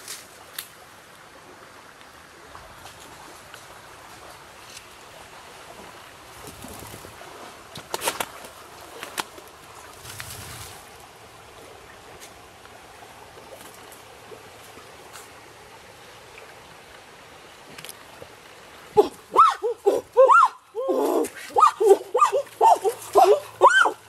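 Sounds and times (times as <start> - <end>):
stems snapping and rustling: 7.8 - 10.4.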